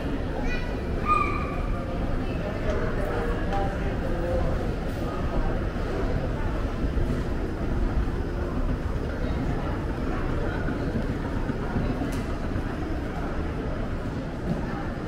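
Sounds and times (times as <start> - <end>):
murmur of voices: 0.0 - 15.0.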